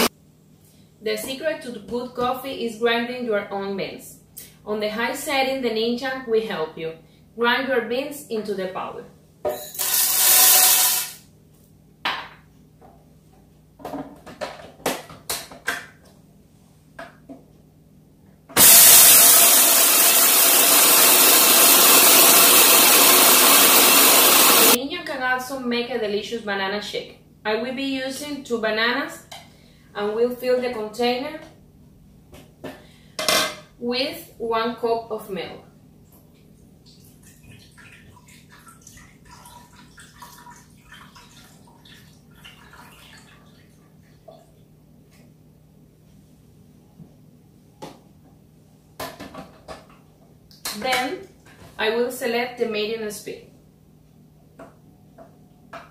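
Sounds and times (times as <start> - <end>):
blender grinding coffee beans: 9.6 - 11.2, 18.6 - 24.8.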